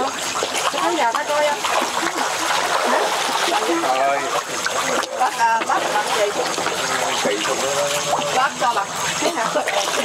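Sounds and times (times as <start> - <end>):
fish splashing at water surface: 0.0 - 10.0.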